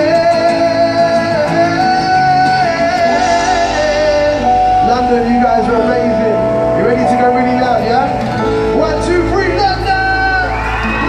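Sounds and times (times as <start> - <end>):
distant live pop music: 0.0 - 11.0.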